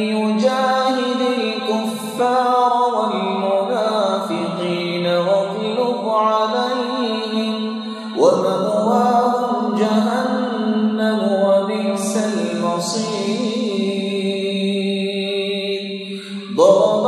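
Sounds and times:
man chanting melodically: 0.0s - 17.0s.

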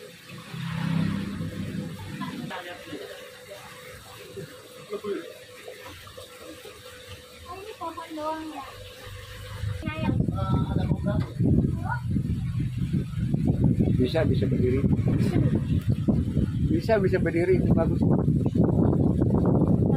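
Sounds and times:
thin steady hum: 0.0s - 19.9s
water splashing from aquarium filter: 0.0s - 19.9s.

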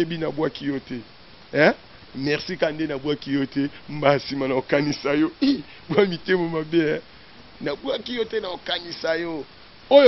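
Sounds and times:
man speaking: 0.0s - 7.0s, 7.6s - 10.0s.

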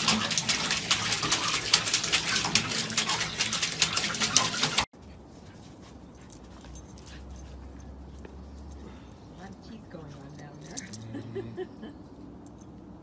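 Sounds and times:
metallic jingling clicks: 8.6s - 11.3s.

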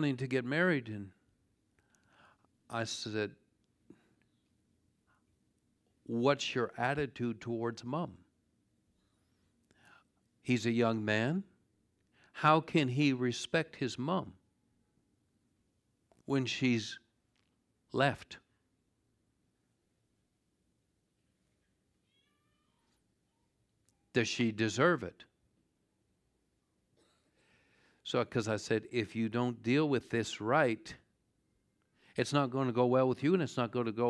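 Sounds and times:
man speaking: 0.0s - 1.2s, 2.7s - 3.4s, 6.1s - 8.2s, 10.4s - 11.5s, 12.4s - 14.4s, 16.2s - 17.1s, 17.9s - 18.4s, 24.1s - 25.3s, 28.1s - 31.1s, 32.2s - 34.0s
faint high-pitched cry: 22.0s - 23.5s.

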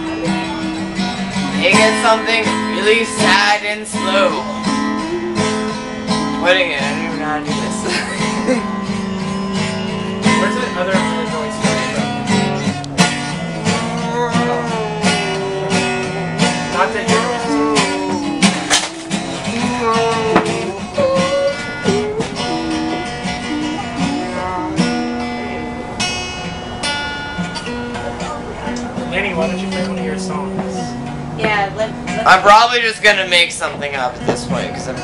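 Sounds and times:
acoustic guitar strummed and picked: 0.0s - 35.0s
sliding wavering melody line: 1.9s - 7.4s, 13.4s - 27.6s.

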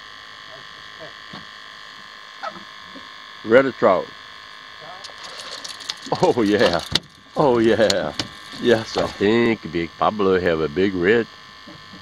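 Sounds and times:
steady buzzing hum: 0.0s - 12.0s
fishing reel clicking: 5.0s - 9.3s.

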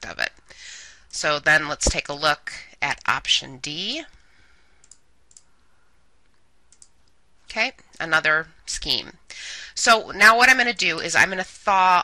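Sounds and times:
low background hiss: 0.0s - 12.0s
faint mouse clicks: 4.1s - 7.2s.

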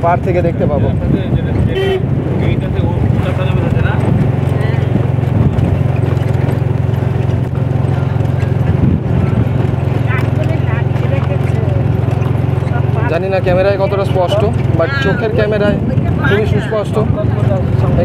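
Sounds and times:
engine and road drone: 0.0s - 18.0s.

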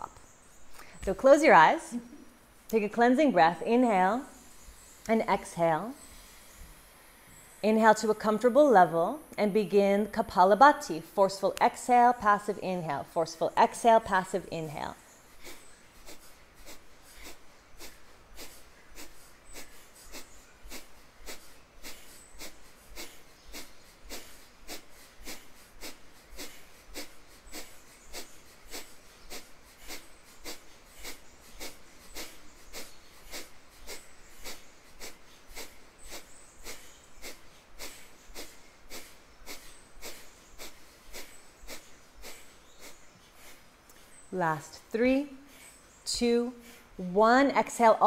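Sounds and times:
forceful nasal exhales: 6.0s - 7.6s, 15.3s - 44.3s.

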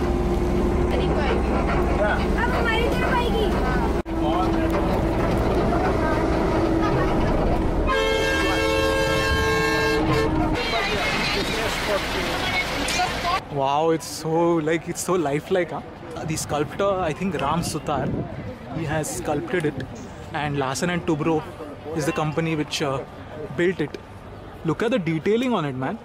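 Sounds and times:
bus rumbling: 0.0s - 13.7s
people talking: 0.9s - 9.8s, 10.6s - 24.0s
vehicle horn blast: 7.8s - 10.6s.

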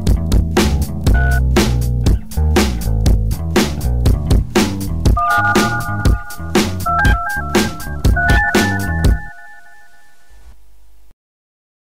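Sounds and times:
beeping phone melody: 1.2s - 1.4s, 5.2s - 10.4s
drum hit: 3.6s - 9.3s.

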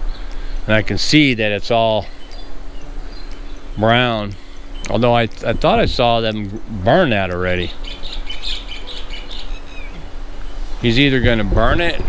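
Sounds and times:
faint steady hum: 0.0s - 12.0s
small birds chirping: 0.0s - 12.0s.

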